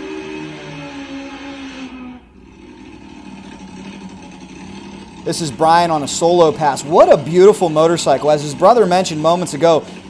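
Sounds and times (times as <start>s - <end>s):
drag motorcycle engine roaring: 0.0s - 10.0s.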